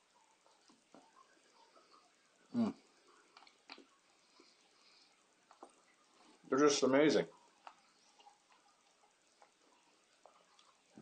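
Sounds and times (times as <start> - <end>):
faint clicks: 3.2 - 4.0.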